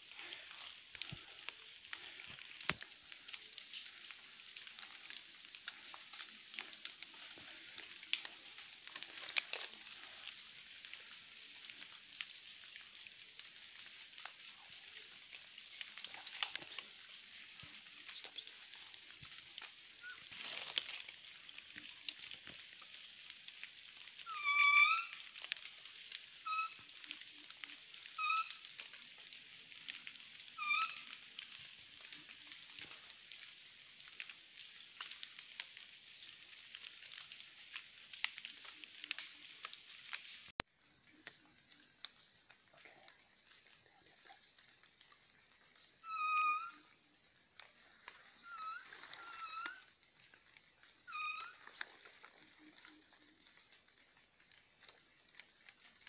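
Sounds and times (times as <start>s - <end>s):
rustling through undergrowth: 0.0s - 56.0s
animal lure call: 26.4s - 26.9s, 28.2s - 28.6s, 46.0s - 46.9s, 48.1s - 49.9s, 51.1s - 51.8s.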